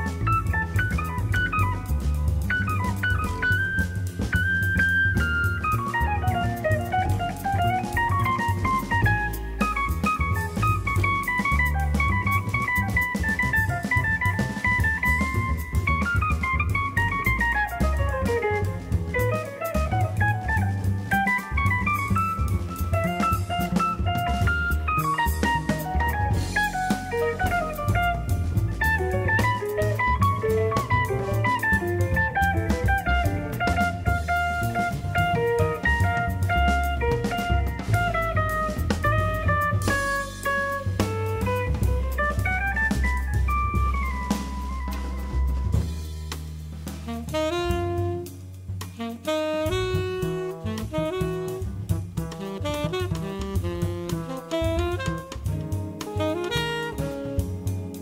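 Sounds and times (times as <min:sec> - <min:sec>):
tenor saxophone: 0:00.0 - 0:46.2, 0:46.8 - 0:58.0
double bass: 0:00.0 - 0:58.0
drum kit with cymbals: 0:00.0 - 0:58.0.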